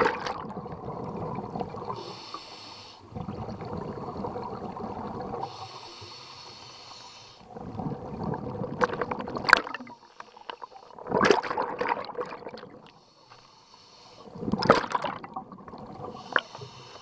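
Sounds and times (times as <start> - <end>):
gurgling exhaled bubbles: 0.0 - 2.1, 3.1 - 5.7, 7.5 - 12.9, 14.3 - 16.4
hissing regulator inhale: 1.9 - 3.1, 5.4 - 7.5, 9.9 - 11.0, 12.9 - 14.4, 16.0 - 17.0.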